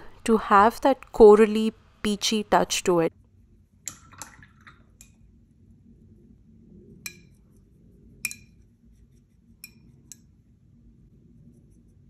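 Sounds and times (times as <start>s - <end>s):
brush in wet paint: 7.2s - 12.0s
brush clinking on porcelain: 9.6s - 10.3s.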